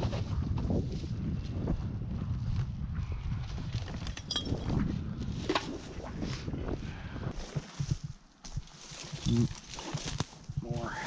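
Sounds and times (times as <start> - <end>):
wind rumble on microphone: 0.0 - 11.0
footsteps on dry leaves and twigs: 7.3 - 11.0.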